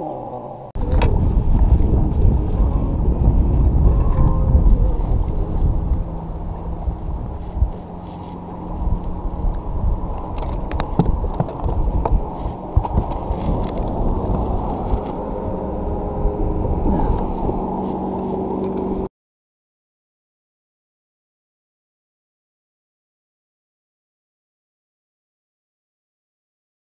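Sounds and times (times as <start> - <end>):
steady low hum: 0.0 - 19.1
wind rumble: 0.0 - 19.1
camera handling noise: 10.2 - 12.1
sharp clicks and knocks: 10.2 - 14.5.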